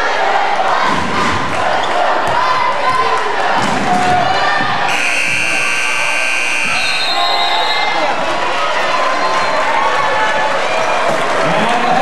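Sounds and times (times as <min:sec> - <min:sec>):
crowd noise and chatter: 0:00.0 - 0:12.0
scoreboard buzzer: 0:04.9 - 0:07.2.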